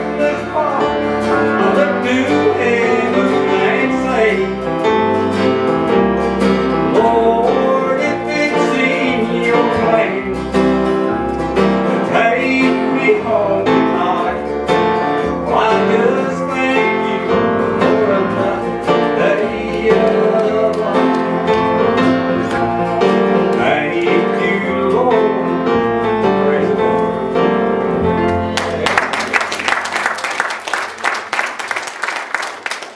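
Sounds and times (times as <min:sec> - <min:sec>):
man singing: 0:00.0 - 0:04.8, 0:06.8 - 0:10.7, 0:11.7 - 0:14.6, 0:15.2 - 0:27.6
mandolin playing: 0:00.0 - 0:07.8
acoustic guitars playing: 0:00.0 - 0:31.4.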